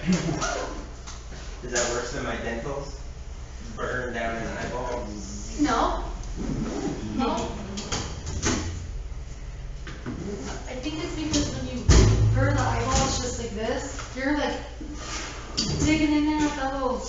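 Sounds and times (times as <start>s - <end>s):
loud thump: 11.9s - 13.3s.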